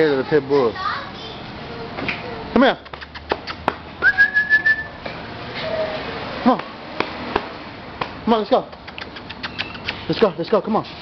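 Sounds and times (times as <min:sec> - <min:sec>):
person whistling: 0:04.0 - 0:05.0.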